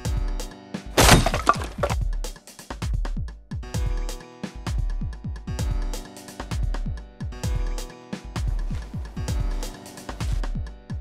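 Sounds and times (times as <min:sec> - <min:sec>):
glass shattering: 0:01.0 - 0:02.0
electronic music with kick drum: 0:02.8 - 0:11.0.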